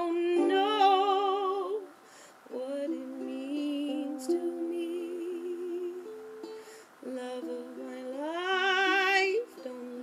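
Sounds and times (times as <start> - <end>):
woman singing a long note: 0.0 - 1.9, 7.0 - 10.0
ukulele picking: 0.0 - 10.0.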